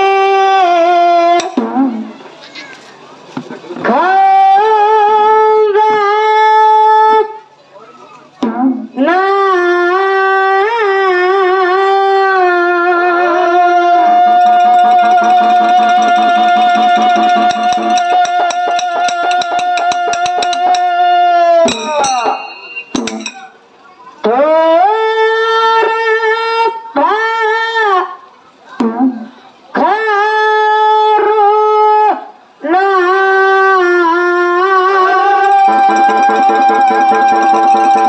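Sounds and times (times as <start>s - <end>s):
quick metallic clinks: 16.9s - 20.9s, 21.7s - 23.6s.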